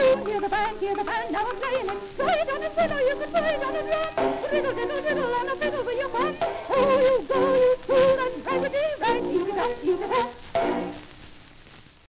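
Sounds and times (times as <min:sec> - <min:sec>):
ragtime song from old record: 0:00.0 - 0:12.0
record surface hiss: 0:00.0 - 0:12.0.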